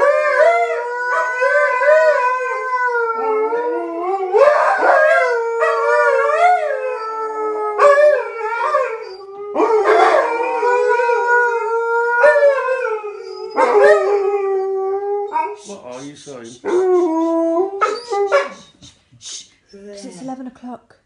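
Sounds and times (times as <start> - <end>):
dogs howling together: 0.0 - 15.6, 16.6 - 18.8.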